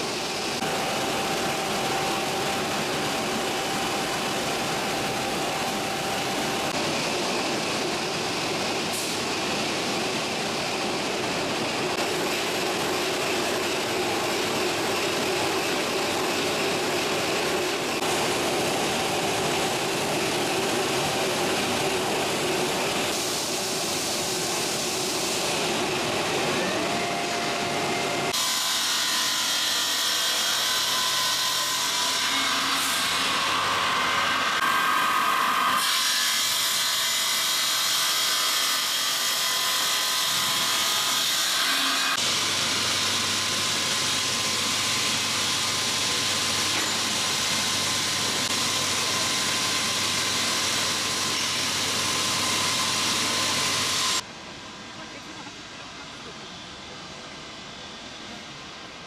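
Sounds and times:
circular saw cutting stone: 0:00.0 - 0:06.8, 0:12.0 - 0:54.3
slab polishing machine: 0:00.0 - 0:54.3.

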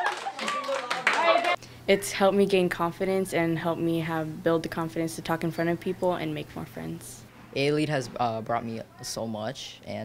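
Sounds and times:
teenagers clapping: 0:00.0 - 0:01.6
teenagers' voices: 0:00.0 - 0:09.8.

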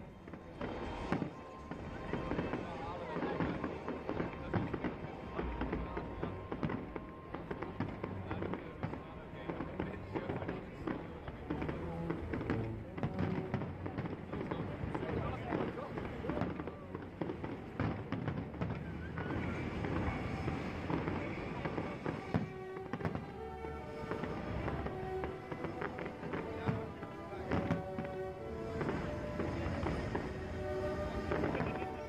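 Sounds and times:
fireworks popping and crackling: 0:00.0 - 0:32.0
music: 0:00.0 - 0:32.0
people's voices: 0:00.0 - 0:32.0.

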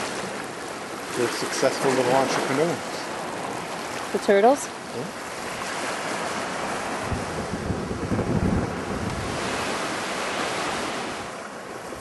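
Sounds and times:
ocean surf washing ashore: 0:00.0 - 0:12.0
wind buffeting microphone: 0:02.6 - 0:12.0.

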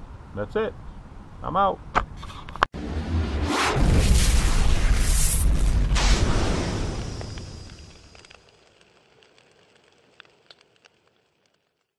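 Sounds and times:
rumbling explosion boom: 0:03.0 - 0:08.4
faint spark crackles: 0:03.9 - 0:11.9.

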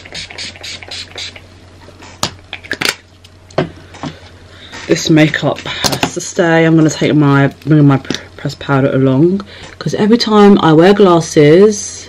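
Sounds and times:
spray bottle hissing: 0:00.0 - 0:01.4.

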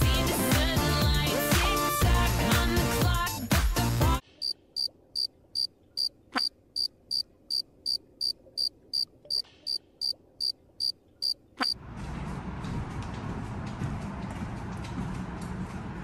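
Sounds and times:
cricket chirping: 0:04.4 - 0:11.8.

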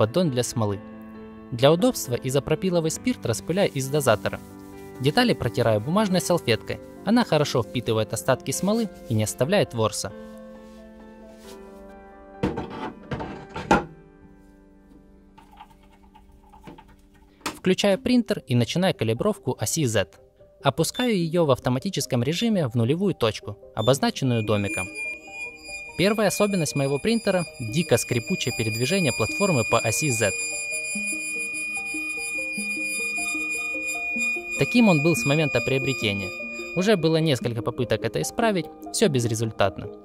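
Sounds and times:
background music: 0:00.0 - 0:40.0
metal vat knocking and clattering: 0:12.5 - 0:13.9
printer high-pitched squeal: 0:23.8 - 0:37.4.

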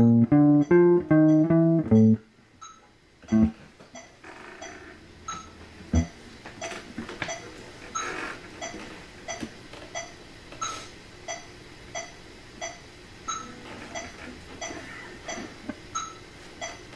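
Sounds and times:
higher accented metronome click: 0:00.0 - 0:03.6
metronome clicking: 0:00.0 - 0:04.1.

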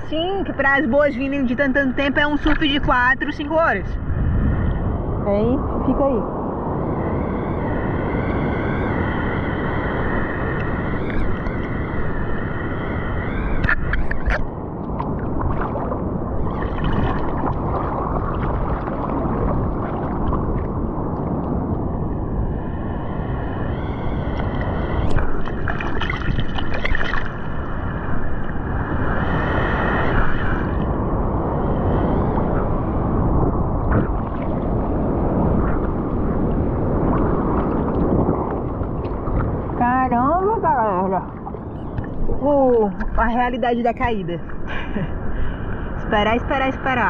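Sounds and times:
sea water sloshing and gurgling: 0:00.0 - 0:47.0
water splashes: 0:13.2 - 0:22.4, 0:24.2 - 0:47.0.

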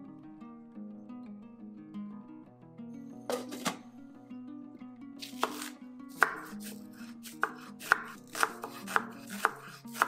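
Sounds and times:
background music: 0:00.0 - 0:10.0
knife chopping on wooden board: 0:03.3 - 0:03.8, 0:05.2 - 0:10.0.

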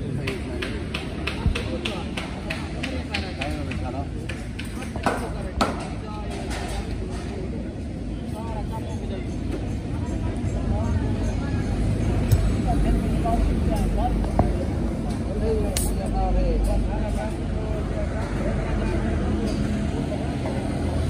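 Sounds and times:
voices talking: 0:00.0 - 0:21.0.

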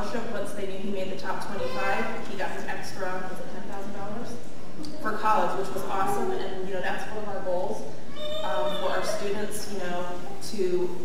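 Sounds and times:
woman talking into microphone: 0:00.0 - 0:11.0.

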